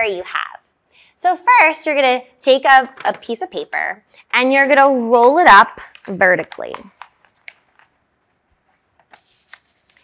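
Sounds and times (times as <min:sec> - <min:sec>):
paper rustling and crinkling: 0:08.6 - 0:10.0.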